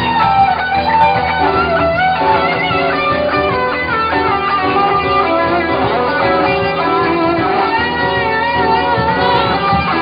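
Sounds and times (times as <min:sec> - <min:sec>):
electric guitar lead with bent notes: 0:00.0 - 0:10.0
live band accompaniment: 0:00.0 - 0:10.0.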